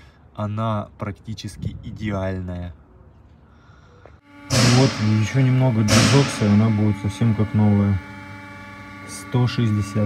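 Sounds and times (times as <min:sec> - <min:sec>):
man talking loudly: 0:04.5 - 0:08.0.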